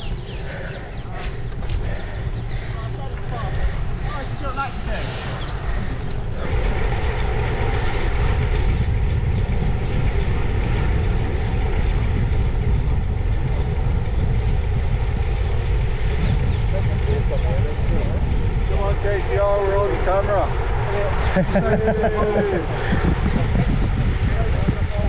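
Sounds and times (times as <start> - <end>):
wind rushing over microphone: 0.0 - 25.0.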